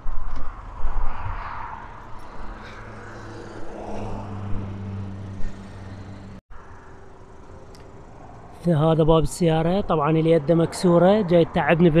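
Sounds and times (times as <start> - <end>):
wind and handling on microphone: 0.0 - 6.0
vehicle engine humming: 0.0 - 12.0.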